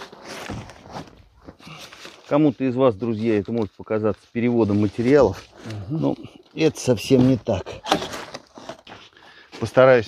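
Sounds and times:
plastic sheet rustling: 0:00.0 - 0:03.6.

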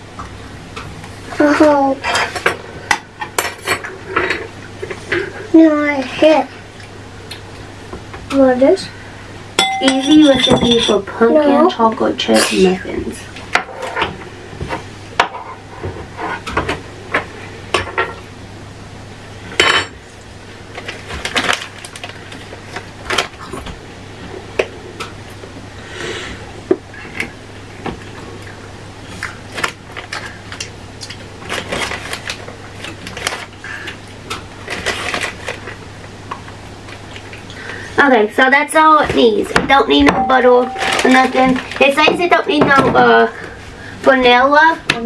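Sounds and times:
dishes and utensils clattering: 0:09.6 - 0:11.2.

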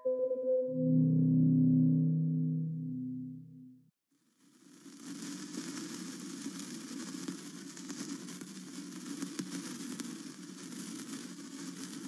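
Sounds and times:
sparkler hissing and crackling: 0:04.2 - 0:12.0.

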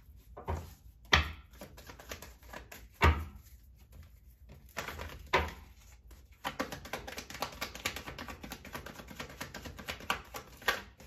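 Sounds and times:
cards being shuffled: 0:00.2 - 0:11.0.

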